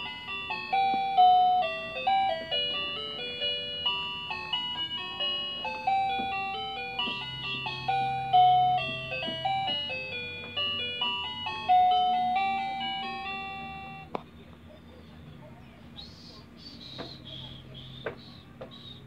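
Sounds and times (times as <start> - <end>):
tinny electronic toy melody: 0.0 - 14.2.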